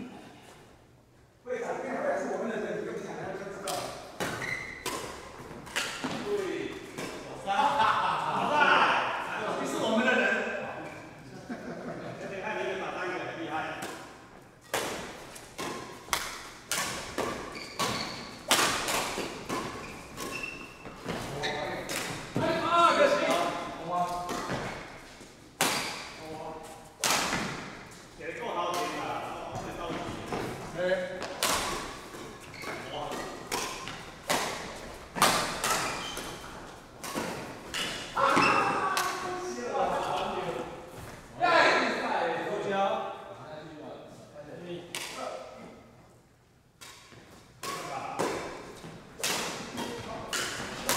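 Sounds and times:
rackets smacking shuttlecock: 3.6 - 7.3, 13.8 - 22.5, 23.1 - 26.2, 27.0 - 28.0, 31.1 - 39.3, 46.8 - 50.9.

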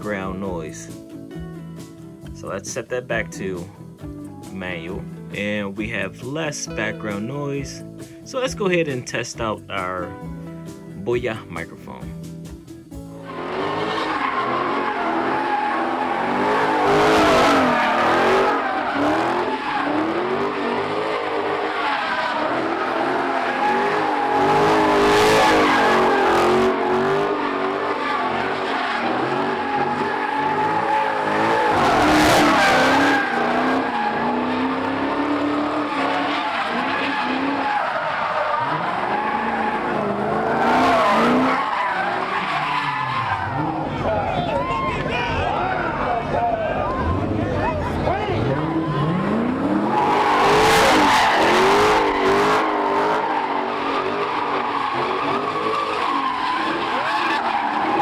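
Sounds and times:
tyres squealing: 13.2 - 58.0.

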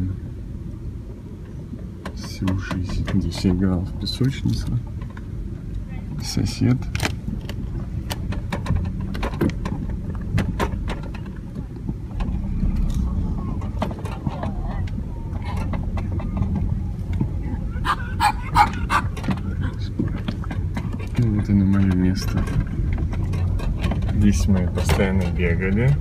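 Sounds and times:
wind rumble on microphone: 0.0 - 26.0
voices: 9.2 - 26.0.

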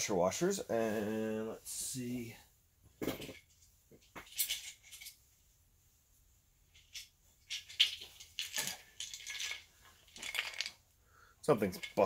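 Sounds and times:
metal parts clinking and rattling: 3.0 - 5.2, 6.7 - 10.8, 11.6 - 12.0.

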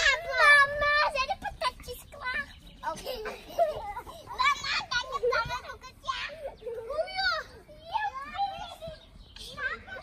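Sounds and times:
children calling and squealing: 0.0 - 10.0.

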